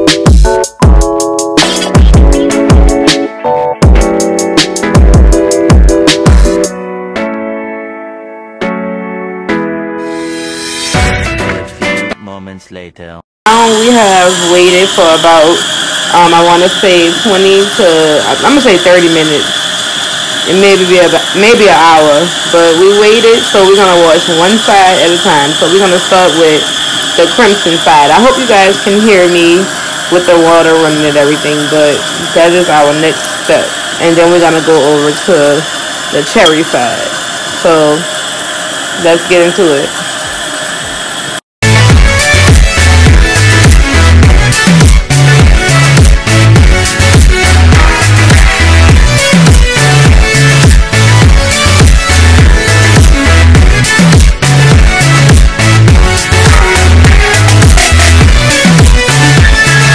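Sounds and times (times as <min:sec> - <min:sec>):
electronic music with heavy bass: 0:00.0 - 0:06.8, 0:41.6 - 0:59.9
person talking: 0:12.2 - 0:19.5, 0:20.5 - 0:26.6, 0:27.2 - 0:35.6, 0:36.2 - 0:38.0, 0:39.0 - 0:39.9
water running into metal sink: 0:13.8 - 0:40.4.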